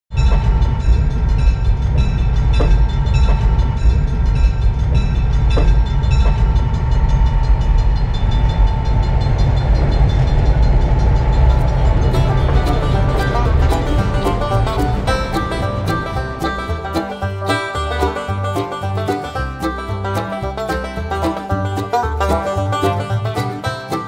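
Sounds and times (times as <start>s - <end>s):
rail vehicle rumbling past: 0.1s - 24.0s
steady high tone: 0.1s - 24.0s.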